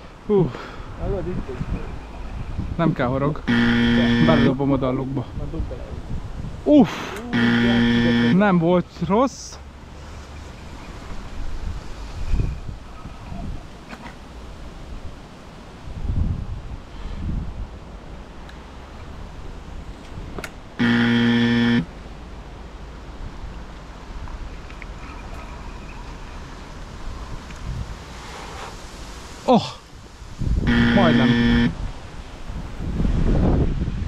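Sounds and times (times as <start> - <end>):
wind buffeting microphone: 0.9 - 3.5, 4.2 - 6.8, 10.8 - 18.2, 26.3 - 28.2, 30.0 - 34.0
horn-like buzzing tone: 3.5 - 4.6, 7.3 - 8.5, 20.8 - 21.9, 30.6 - 31.8.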